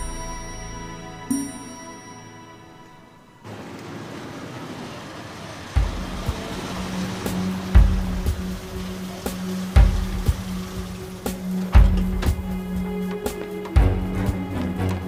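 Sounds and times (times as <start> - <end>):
tense drama music: 0.0 - 15.0
vehicle driving up: 3.4 - 15.0.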